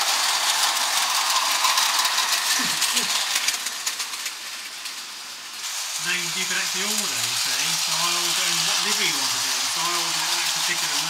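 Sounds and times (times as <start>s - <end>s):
model train hissing on track: 0.0s - 11.0s.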